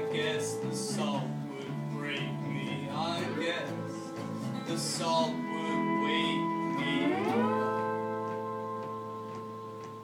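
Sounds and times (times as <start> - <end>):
faint plucked notes: 0.0 - 10.0
guitar note sliding down: 3.8 - 10.0.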